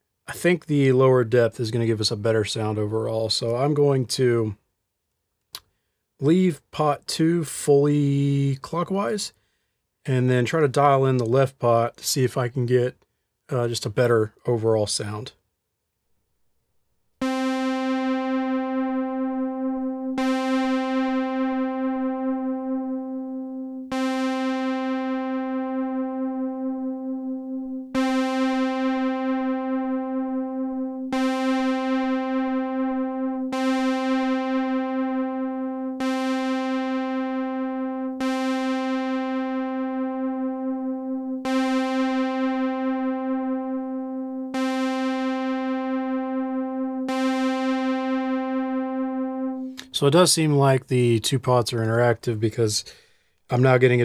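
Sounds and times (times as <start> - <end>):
synthesizer note with chorus: 17.2 - 50.1.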